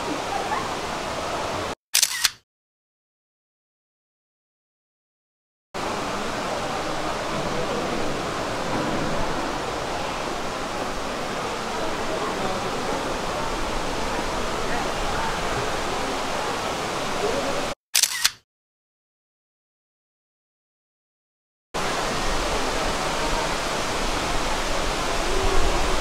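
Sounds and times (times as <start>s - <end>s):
steady rushing water: 0.0s - 1.8s, 5.8s - 17.8s, 21.8s - 26.0s
murmur of voices: 5.8s - 17.7s.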